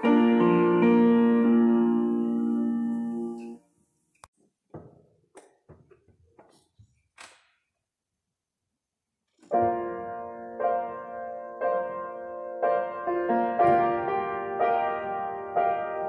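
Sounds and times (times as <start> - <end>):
piano chord: 0.0 - 3.6, 9.5 - 16.0.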